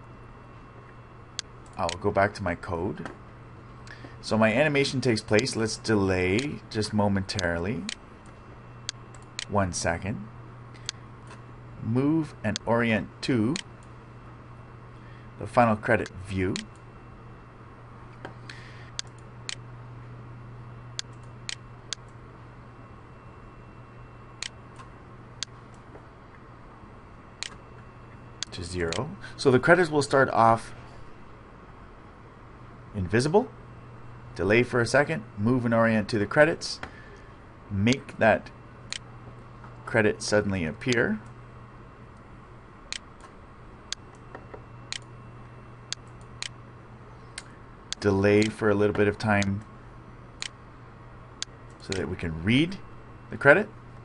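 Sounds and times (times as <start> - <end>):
low electrical hum: 0.0 - 54.0
computer mouse clicking: 19.0 - 19.6, 27.4 - 27.6.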